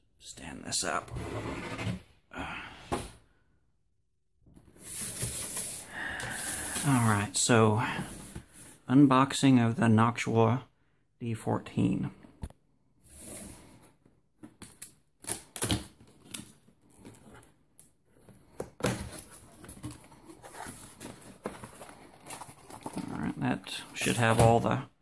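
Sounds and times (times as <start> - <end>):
cardboard rubbing and sliding: 1.1 - 2.1, 4.7 - 7.0.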